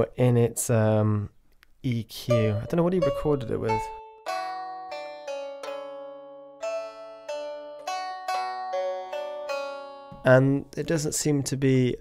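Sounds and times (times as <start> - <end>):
plucked lute notes: 2.3 - 11.0.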